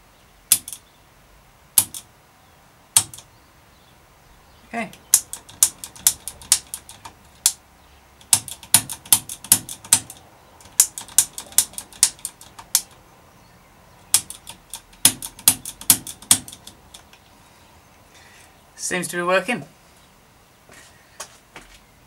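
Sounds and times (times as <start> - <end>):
bike shifter ratchet clicks: 5.2 - 7.6, 8.2 - 13.0, 14.1 - 17.2.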